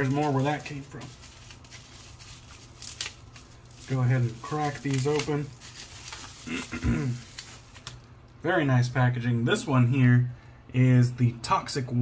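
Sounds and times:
packaging rustling: 0:00.0 - 0:08.4.

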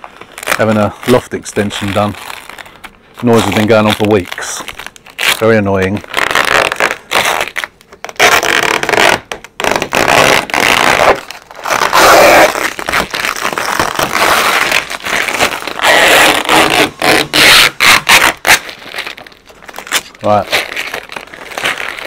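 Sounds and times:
plastic film rustling and crinkling: 0:00.0 - 0:22.0.

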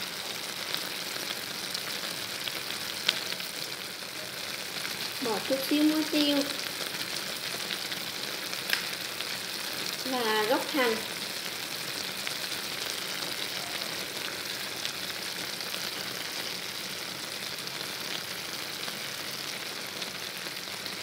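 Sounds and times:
food sizzling in a pot: 0:00.0 - 0:21.0.

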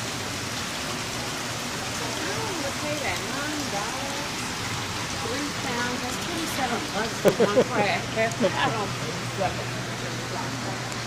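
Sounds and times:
water pouring and splashing: 0:00.0 - 0:11.0.

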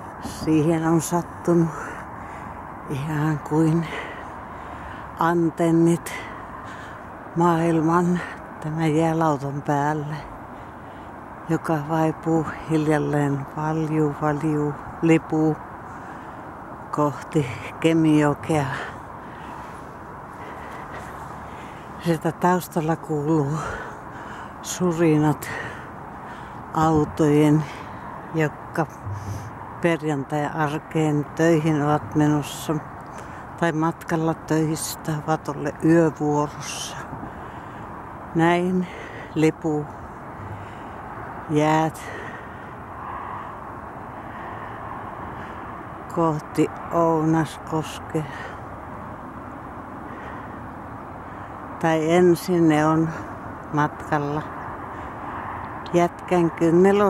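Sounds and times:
distant road traffic hum: 0:00.0 - 0:57.0.

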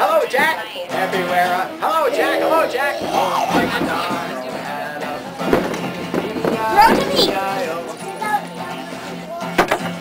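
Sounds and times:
acoustic guitar chord ringing: 0:00.9 - 0:08.3
sharp guitar strum: 0:01.0 - 0:07.5
person singing: 0:01.0 - 0:09.1.

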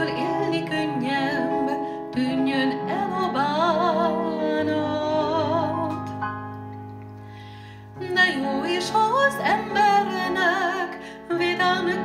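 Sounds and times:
woman singing with vibrato: 0:00.0 - 0:06.0, 0:08.0 - 0:12.0
held instrumental accompaniment: 0:00.0 - 0:12.0.

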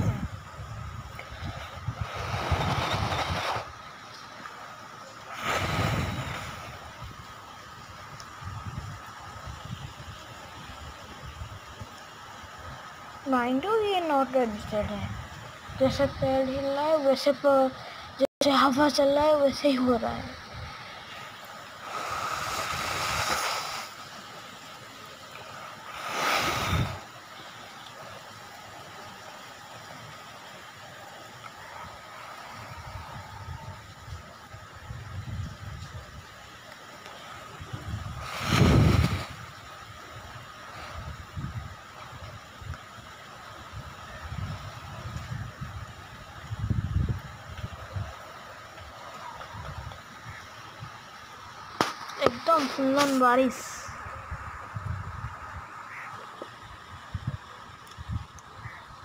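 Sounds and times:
wind gusts buffeting microphone: 0:00.0 - 0:04.0, 0:05.3 - 0:24.2, 0:26.0 - 0:27.3, 0:31.6 - 0:36.5, 0:37.4 - 0:59.0
heavy rain: 0:00.0 - 0:59.0.

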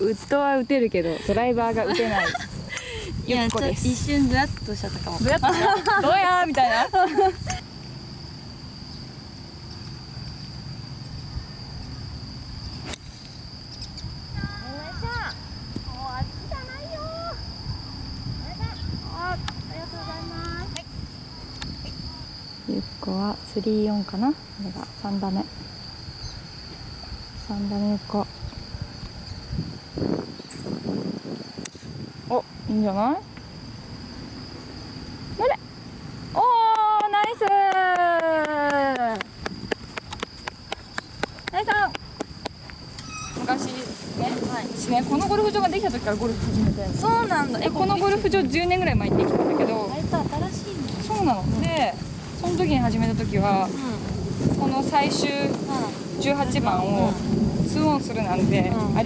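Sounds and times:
cricket buzzing: 0:00.0 - 0:59.0
faint outdoor background noise: 0:00.0 - 0:59.0
low wind rumble: 0:00.0 - 0:59.0
calls rising and falling in pitch: 0:43.0 - 0:43.6.

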